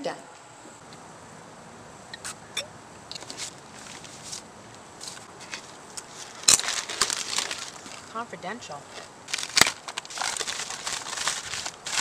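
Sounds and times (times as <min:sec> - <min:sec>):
plastic bag rustling and crinkling: 0:03.1 - 0:12.0.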